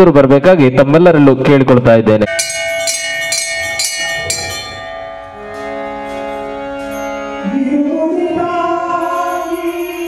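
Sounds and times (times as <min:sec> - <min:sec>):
temple bell ringing: 0:02.3 - 0:08.1.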